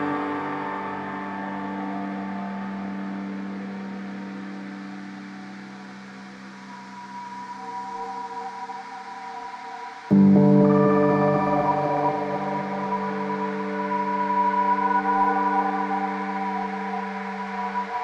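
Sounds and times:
ambient drone music: 0:00.0 - 0:18.0.

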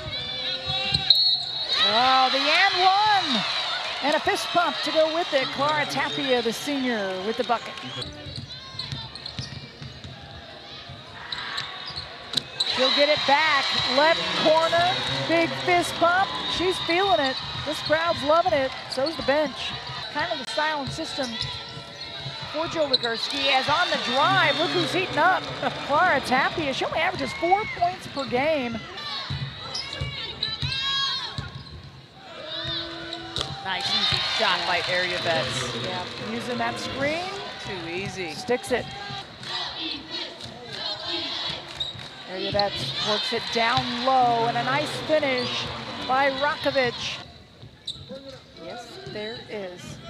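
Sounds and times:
arena crowd noise: 0:00.0 - 0:50.0
sneaker squeak: 0:00.7 - 0:01.9, 0:07.7 - 0:10.2, 0:11.2 - 0:13.1, 0:20.8 - 0:25.6, 0:29.3 - 0:32.0, 0:32.6 - 0:33.6, 0:40.9 - 0:47.0, 0:47.6 - 0:49.5.

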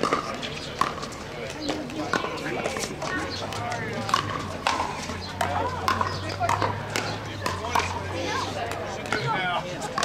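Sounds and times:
players' voices: 0:00.0 - 0:10.0
paddles hitting plastic balls: 0:01.8 - 0:08.0.

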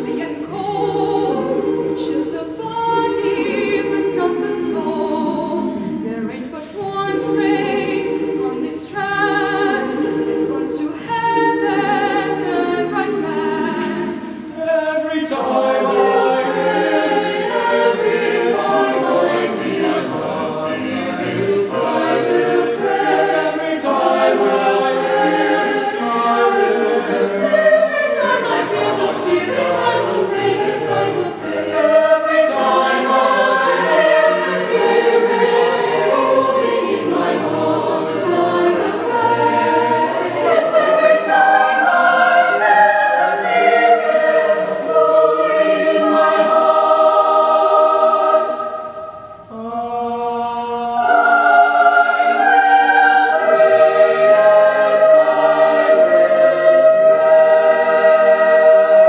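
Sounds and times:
mixed choir singing: 0:00.0 - 0:59.0.

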